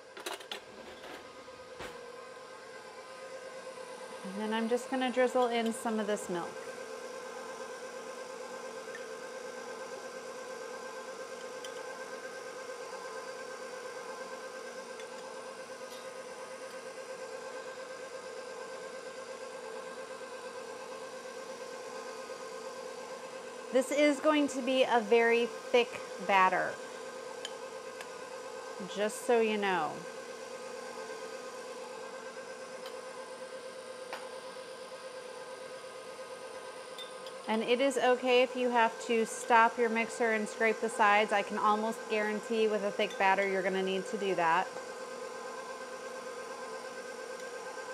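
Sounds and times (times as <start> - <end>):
stand mixer motor humming: 0.0 - 47.9.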